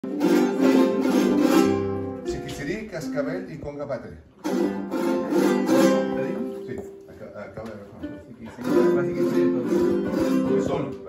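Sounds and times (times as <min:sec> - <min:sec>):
small string instruments strummed: 0:00.0 - 0:03.8, 0:04.4 - 0:11.0.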